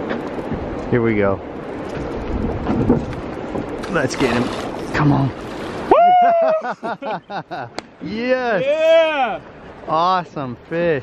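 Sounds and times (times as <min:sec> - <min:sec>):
wind rumbling on microphone: 0:00.0 - 0:06.3
river water rushing: 0:01.4 - 0:11.0.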